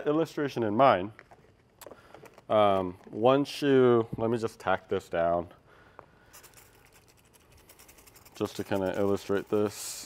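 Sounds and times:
faint scratchy handling sounds: 0.0s - 10.0s.

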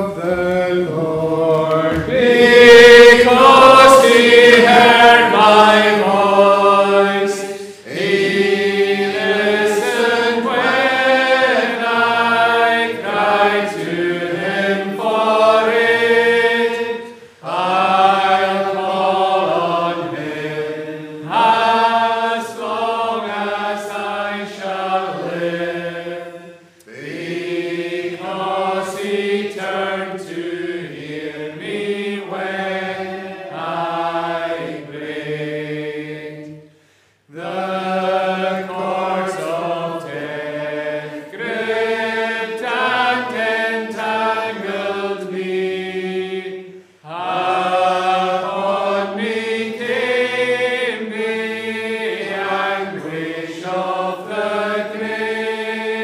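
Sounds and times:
congregation singing a psalm: 0.0s - 56.0s.

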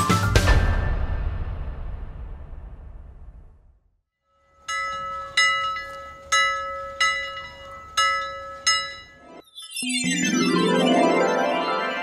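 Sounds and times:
music: 0.0s - 1.8s, 9.2s - 12.0s
bell-like chime strikes: 4.6s - 10.2s.

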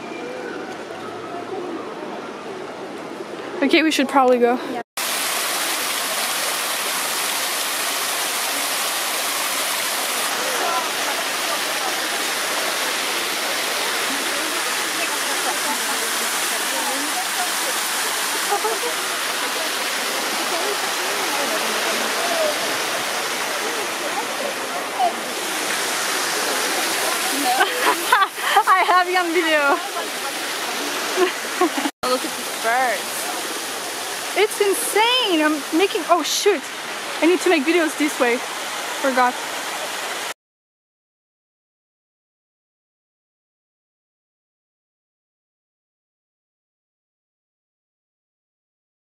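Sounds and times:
fountain water splashing: 0.2s - 40.3s
voices: 10.2s - 39.4s
people laughing: 18.3s - 19.1s, 27.2s - 28.9s, 31.0s - 31.9s.

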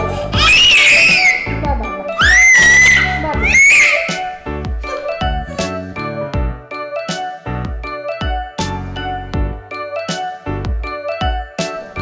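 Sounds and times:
background music with steady beat: 0.0s - 12.0s
child's high-pitched squeal: 0.4s - 4.4s.

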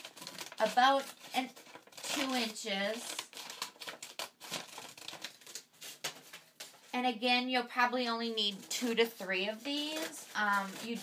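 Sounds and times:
scissors cutting paper: 0.0s - 5.6s, 8.7s - 11.0s
paper rustling and crinkling: 0.0s - 7.1s, 8.0s - 11.0s.

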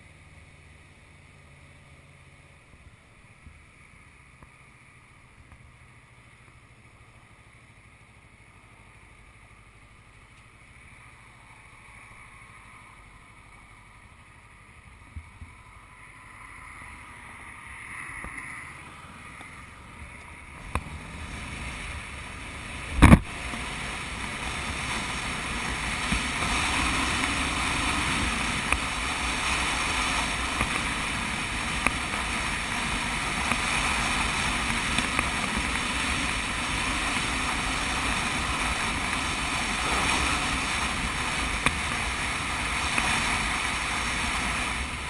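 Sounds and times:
wind and road noise: 0.0s - 45.0s
motorcycle engine accelerating: 20.0s - 45.0s.

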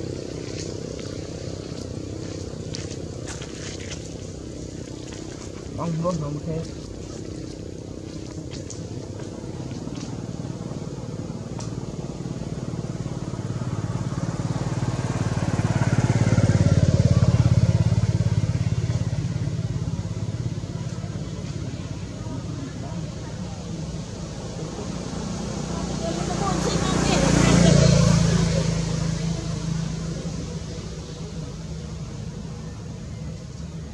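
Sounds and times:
vehicle engine passing by: 0.0s - 33.9s.

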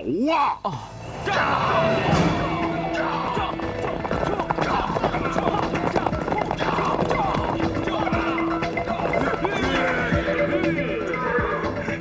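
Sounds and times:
background music: 0.0s - 12.0s
hooves clattering: 2.2s - 11.6s
horses neighing: 2.2s - 12.0s.

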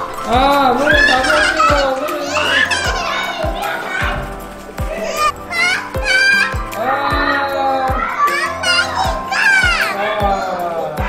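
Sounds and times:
background music with steady beat: 0.0s - 11.0s
girl squealing and vocalising: 5.0s - 6.6s.

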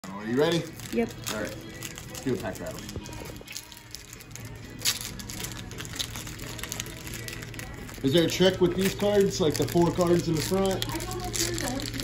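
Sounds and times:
foil packs crinkling: 0.3s - 12.0s.

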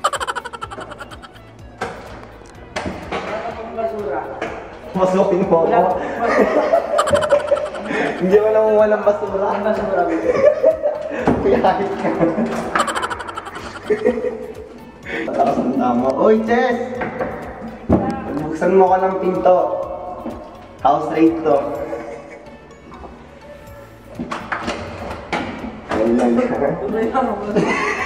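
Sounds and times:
man laughing under his breath: 0.0s - 1.5s, 6.2s - 8.5s, 12.8s - 14.5s.

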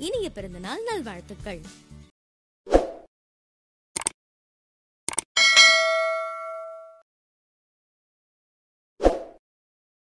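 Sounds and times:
bright bell ding: 5.4s - 7.0s.

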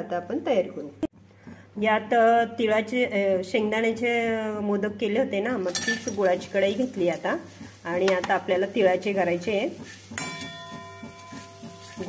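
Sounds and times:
spatula knocking steel pan: 7.1s - 12.0s
pan ringing metallic tone: 10.2s - 12.0s.

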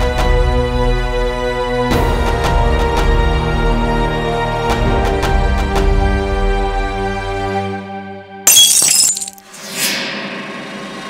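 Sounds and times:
glass shattering: 8.5s - 9.5s.

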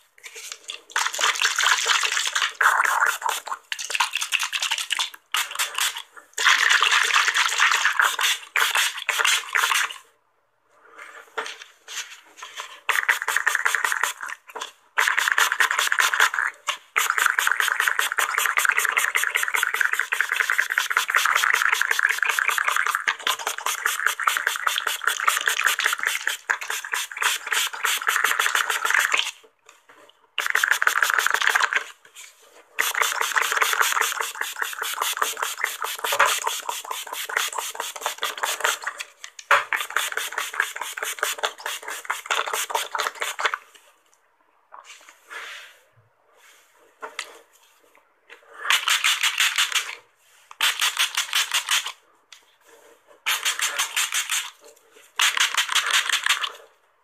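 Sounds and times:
spray bottle hissing sprays: 12.9s - 14.3s, 17.0s - 29.3s, 30.4s - 31.6s, 32.8s - 38.9s, 39.7s - 43.4s, 48.7s - 50.0s, 50.6s - 51.9s, 53.3s - 54.6s, 55.2s - 56.5s.

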